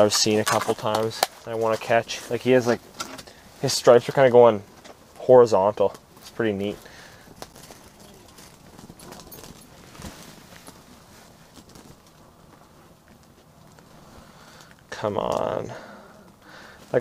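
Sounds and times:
low steady hiss: 0.0s - 17.0s
fingers and clothing rustling: 6.1s - 14.7s.

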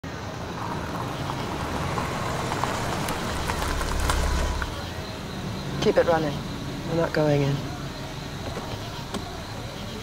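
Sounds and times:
car engine rumble: 0.1s - 10.0s.

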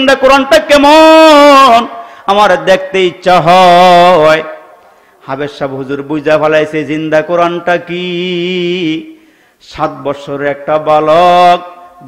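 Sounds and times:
man preaching in sing-song chant: 0.0s - 12.0s.

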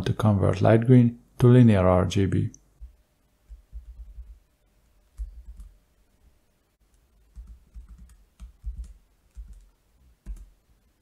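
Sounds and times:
computer keyboard keystrokes: 7.3s - 10.5s.

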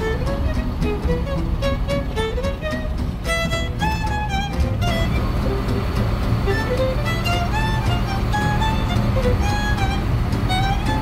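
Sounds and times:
faint fiddle music: 0.0s - 11.0s
truck engine and road rumble: 0.0s - 11.0s.

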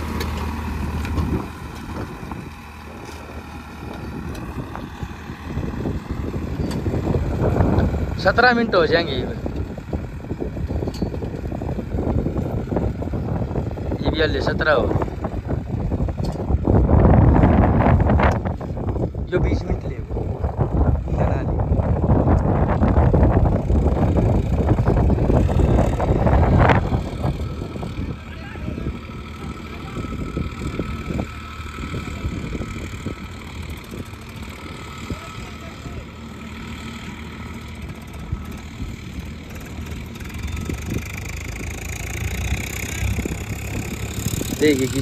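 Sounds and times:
distant tractor engine drone: 0.0s - 45.0s
wind buffeting microphone: 0.0s - 45.0s.

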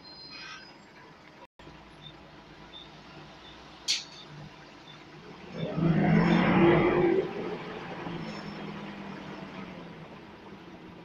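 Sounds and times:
bus diesel engine accelerating: 0.9s - 11.0s.

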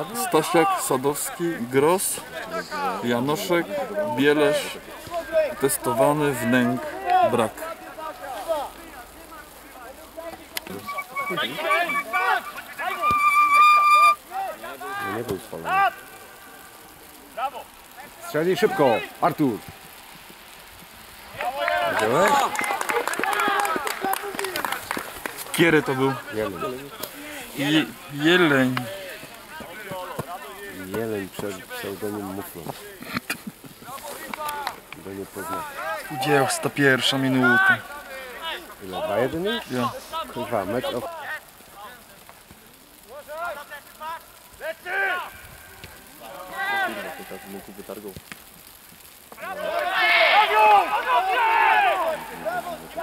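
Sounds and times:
voices calling and shouting: 0.0s - 53.0s
distant players shouting: 3.7s - 19.9s, 49.4s - 53.0s
long held call: 10.6s - 14.6s.

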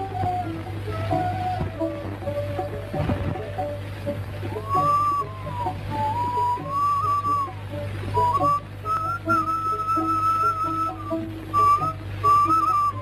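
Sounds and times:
steady low hum: 0.0s - 13.0s
slow high melody on pure tone: 4.5s - 13.0s.

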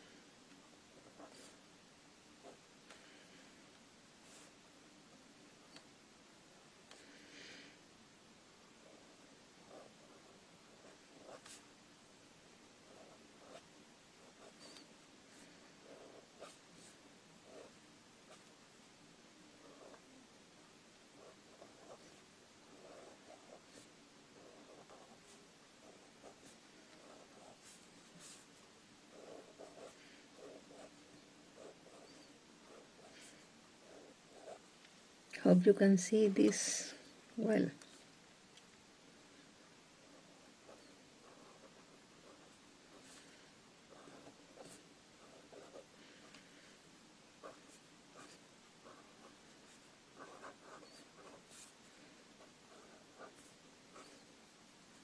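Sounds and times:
pen nib scratching on paper: 0.9s - 1.7s, 2.4s - 3.2s, 8.8s - 11.7s, 12.8s - 18.6s, 19.5s - 20.1s, 21.1s - 34.7s, 40.0s - 55.0s.

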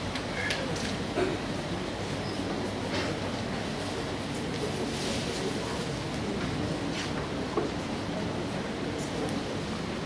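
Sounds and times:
rumbling hall background noise: 0.0s - 10.0s.

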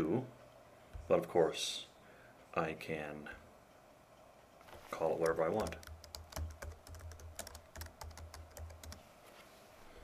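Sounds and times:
typing on a keyboard: 5.0s - 9.0s.

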